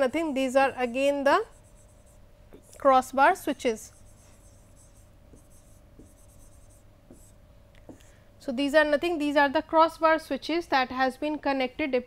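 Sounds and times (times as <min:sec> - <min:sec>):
stylus scratching on tablet: 0:00.0 - 0:07.4.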